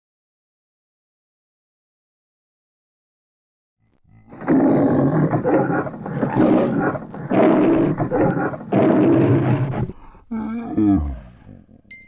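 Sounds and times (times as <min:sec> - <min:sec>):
lion roaring: 0:03.9 - 0:11.9.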